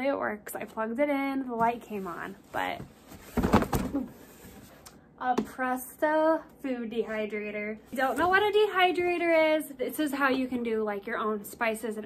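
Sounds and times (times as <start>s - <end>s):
cardboard box knocks and scrapes: 2.6s - 4.7s.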